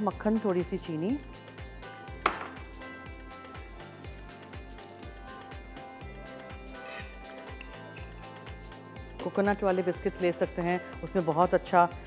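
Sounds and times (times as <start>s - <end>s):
background music with steady beat: 0.0s - 12.0s
ceramic bowl clinking on countertop: 2.3s - 2.6s.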